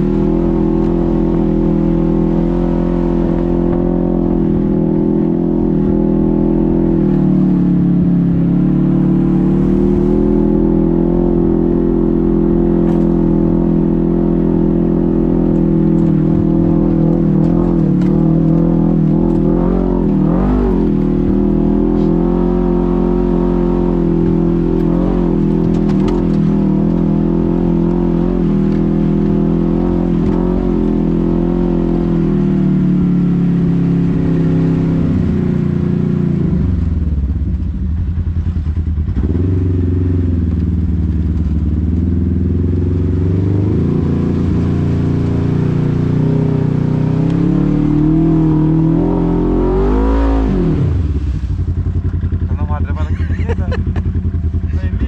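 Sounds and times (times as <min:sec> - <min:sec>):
engine revving: 0:00.0 - 0:37.6, 0:38.7 - 0:55.0
utility vehicle engine running: 0:00.0 - 0:55.0.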